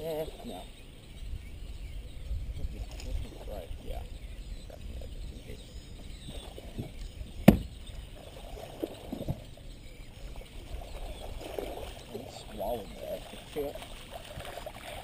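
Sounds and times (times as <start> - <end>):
sharp knock on boat: 7.4 - 7.8.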